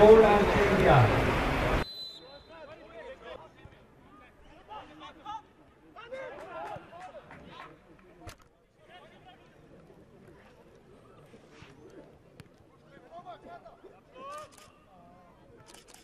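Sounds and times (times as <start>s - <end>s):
man's voice over loudspeaker: 0.0s - 1.2s.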